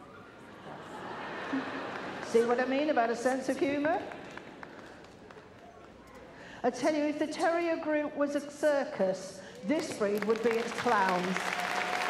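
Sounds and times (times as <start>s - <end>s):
indoor arena hum: 0.0s - 12.0s.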